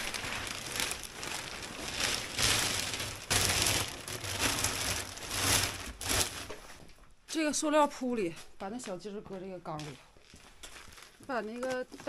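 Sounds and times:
plastic sheeting crinkling: 0.0s - 7.6s, 9.8s - 12.0s.

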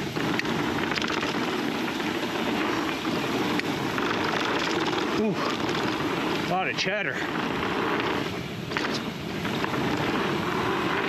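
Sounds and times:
bicycle tyres on dirt trail: 0.0s - 11.0s
bike rattling: 0.0s - 11.0s
wind buffeting microphone: 0.0s - 11.0s.

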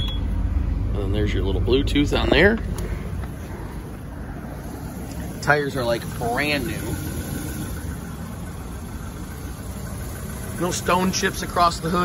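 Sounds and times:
van engine idling: 0.0s - 12.0s.

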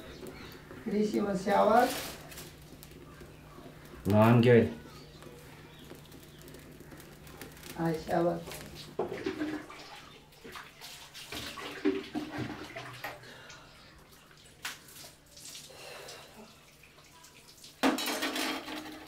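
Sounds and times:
water splashing and pouring: 8.7s - 13.2s
metal vessels knocking: 17.8s - 19.0s.

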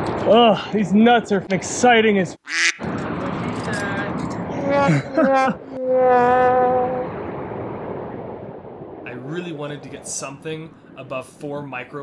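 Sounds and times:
wind on microphone: 2.8s - 12.0s.

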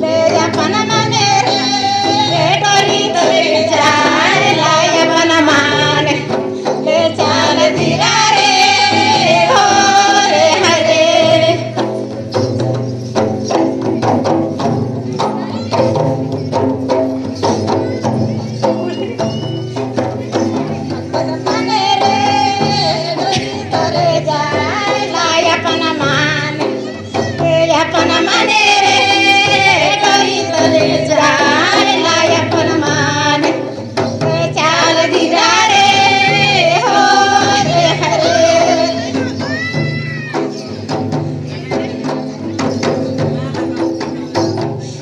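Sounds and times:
group singing: 0.0s - 12.2s, 20.4s - 39.6s
hand drums beating: 0.0s - 45.0s
instrumental accompaniment: 0.0s - 45.0s.

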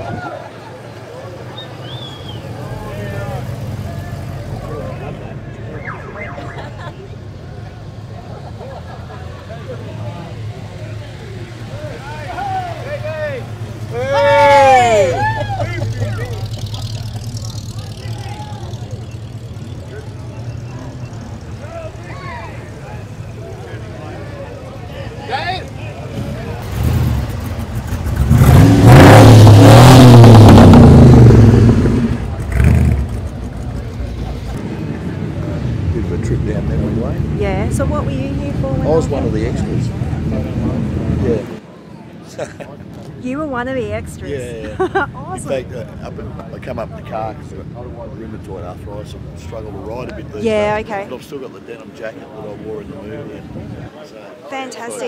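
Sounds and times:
cars rumbling past: 0.0s - 55.0s
car engine revving loudly: 26.1s - 33.2s.

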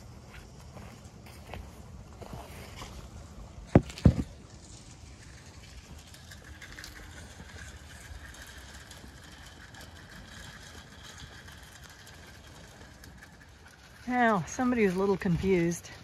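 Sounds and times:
sheep crunching feed: 0.0s - 16.0s.

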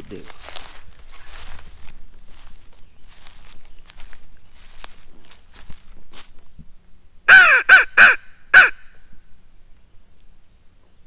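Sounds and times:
crow call caws: 7.3s - 8.9s.

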